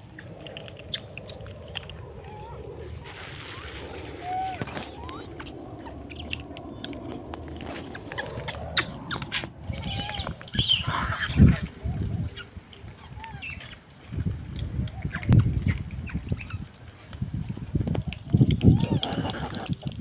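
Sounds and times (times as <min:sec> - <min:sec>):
animal calls and chirps: 0:00.0 - 0:13.9, 0:14.8 - 0:16.8, 0:18.0 - 0:19.9
outdoor background noise: 0:00.0 - 0:20.0.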